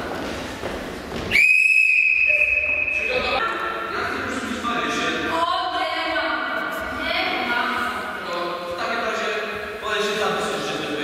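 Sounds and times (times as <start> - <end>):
long high-pitched whistle blast: 1.3 - 3.4.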